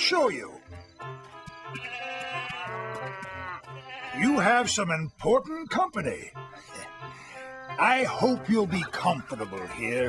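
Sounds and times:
sheep bleating: 1.6s - 4.7s, 8.8s - 10.0s.

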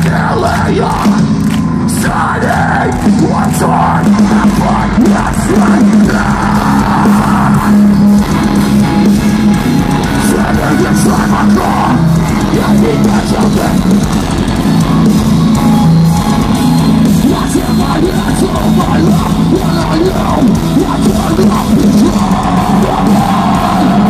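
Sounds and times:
metal band playing live: 0.0s - 24.0s.

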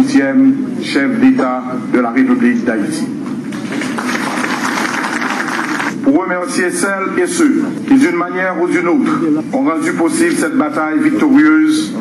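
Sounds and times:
audience applauding: 3.5s - 6.0s.

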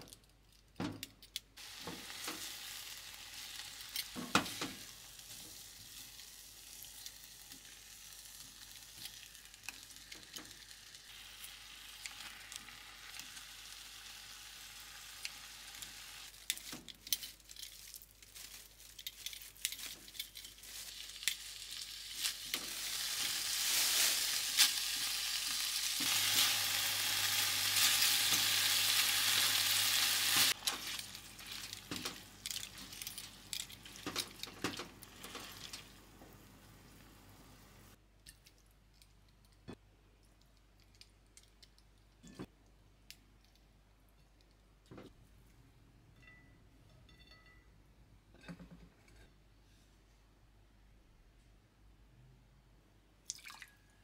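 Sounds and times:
meat sizzling in frying pan: 1.6s - 16.5s, 20.6s - 36.0s.

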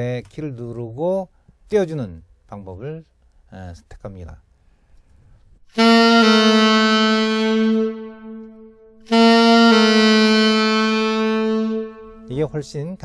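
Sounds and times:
tenor saxophone playing: 5.7s - 12.7s.

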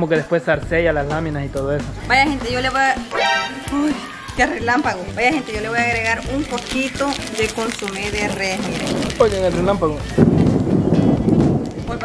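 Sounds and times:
loud thunder rumble: 8.2s - 12.0s.

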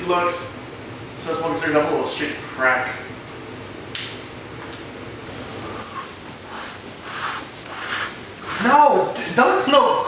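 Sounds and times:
sharp click: 3.9s - 4.2s
breathy puffs and sniffs: 5.7s - 8.6s.

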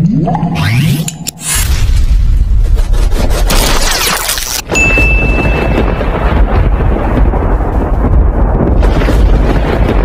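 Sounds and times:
deep thunder-like rumble: 4.9s - 10.0s.

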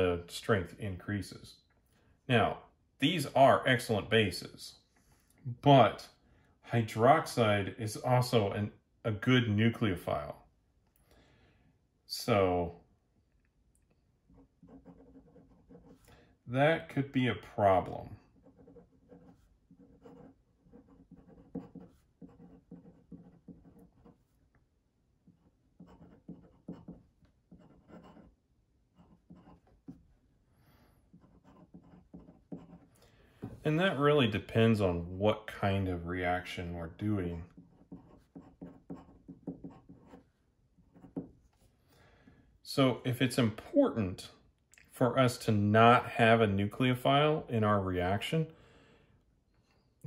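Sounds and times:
pen nib scratching paper: 14.3s - 16.1s, 18.2s - 24.6s, 25.2s - 30.0s, 31.1s - 33.0s, 37.5s - 41.3s.

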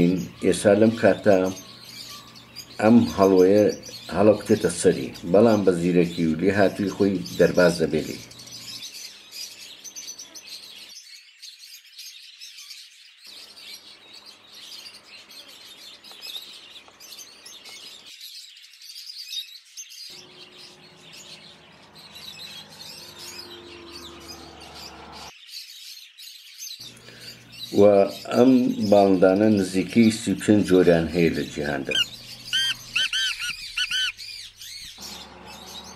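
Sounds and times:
birds chirping: 0.0s - 35.9s.

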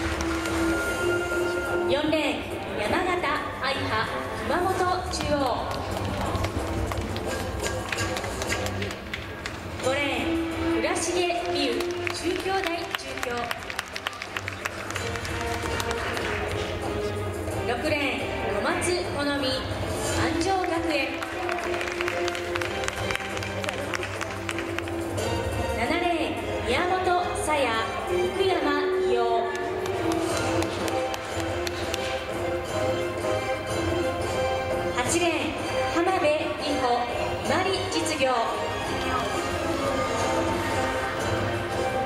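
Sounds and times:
music over public address: 0.0s - 42.0s.

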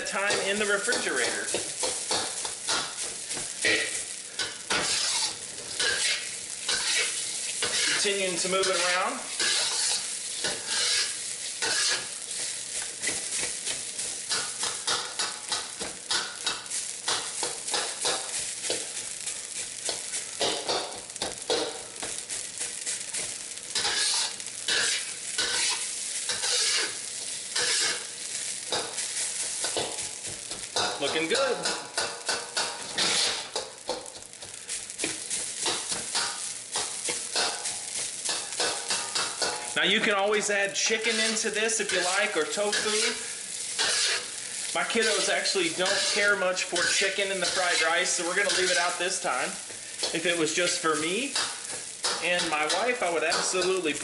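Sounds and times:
rice sizzling in a wok: 0.0s - 54.0s
metal spatula scraping a wok: 0.3s - 39.8s, 40.9s - 54.0s.

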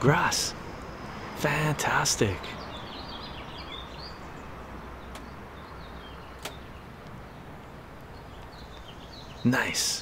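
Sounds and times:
small birds chirping: 0.0s - 10.0s
sharp clicks: 5.1s - 5.4s, 6.4s - 7.2s.

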